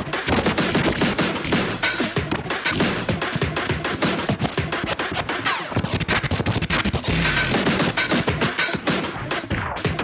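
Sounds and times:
vinyl record scratching: 0.0s - 10.0s.

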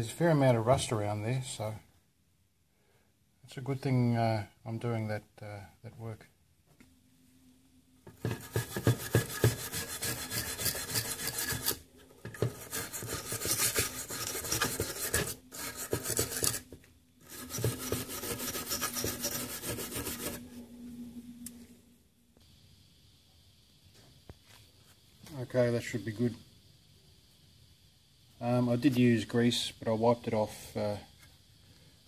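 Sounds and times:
hand tool scraping rust off metal: 8.1s - 20.4s.

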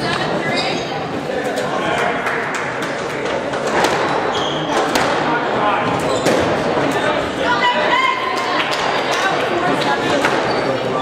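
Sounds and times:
murmur of spectators in echoing hall: 0.0s - 11.0s
squash ball cracking off rackets and walls: 3.5s - 5.4s.

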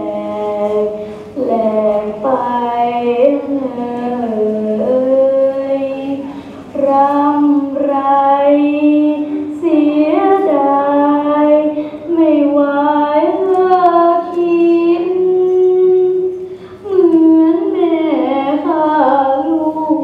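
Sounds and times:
girl singing unaccompanied: 0.0s - 20.0s.

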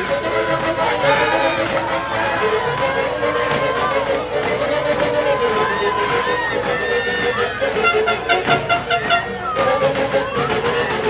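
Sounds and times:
live band music: 7.2s - 11.0s
saxophones playing melody: 7.4s - 9.6s
steady beat: 7.4s - 11.0s.

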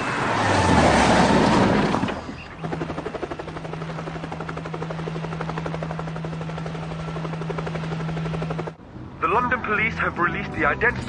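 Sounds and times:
helicopter engine hum: 1.3s - 8.8s
helicopter rotor blades chopping: 1.4s - 8.8s.

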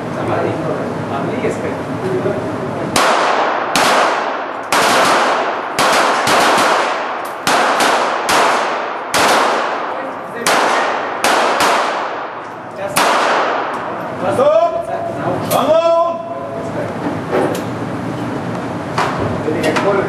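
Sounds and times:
pistol shots with ringing echo: 2.9s - 14.0s.

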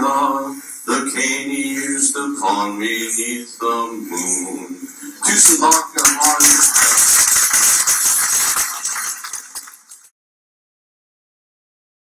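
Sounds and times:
audience applauding: 5.2s - 10.1s.

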